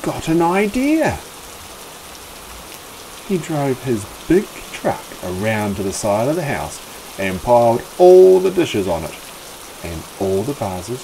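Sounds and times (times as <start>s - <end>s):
rain falling: 0.0s - 11.0s.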